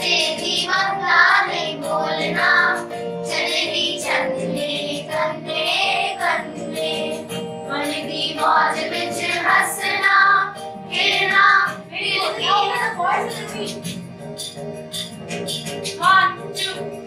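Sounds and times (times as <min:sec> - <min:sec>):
children singing together: 0:00.0 - 0:13.8
electronic keyboard chords: 0:00.0 - 0:17.0.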